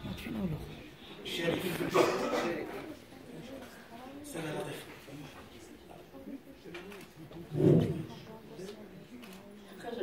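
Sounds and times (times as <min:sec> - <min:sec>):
quiet murmured talk: 0:00.0 - 0:10.0.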